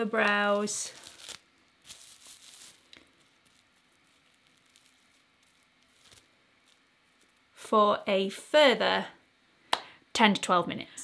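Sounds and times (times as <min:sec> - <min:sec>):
plastic cling film crinkling: 0:00.0 - 0:07.6.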